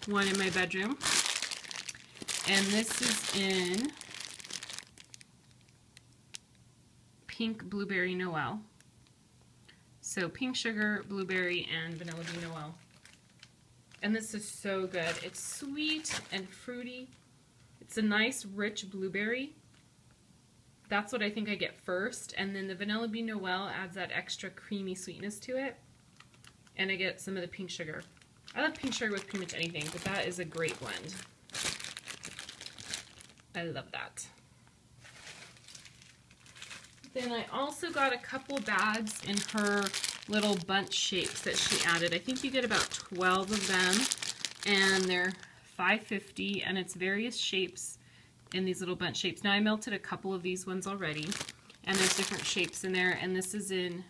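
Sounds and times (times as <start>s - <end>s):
cellophane bag crinkling: 0.0s - 6.5s, 11.3s - 16.6s, 26.1s - 26.8s, 27.9s - 33.6s, 35.0s - 45.6s, 50.8s - 53.2s
faint ticks from cellophane bag: 3.8s - 6.6s, 12.0s - 14.0s, 25.9s - 26.8s.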